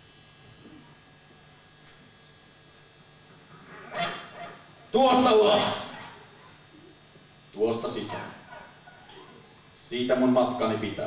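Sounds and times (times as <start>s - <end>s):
loud wordless cry: 3.8s - 6.6s.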